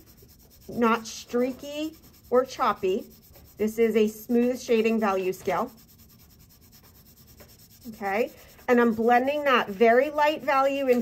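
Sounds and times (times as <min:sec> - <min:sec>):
pencil scratching on paper: 0:00.0 - 0:11.0
person speaking: 0:07.7 - 0:11.0.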